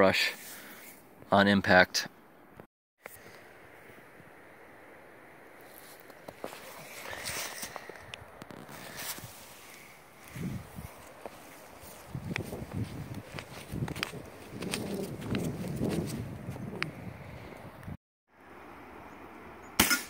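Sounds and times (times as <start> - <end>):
footsteps in snow: 5.6 - 16.8.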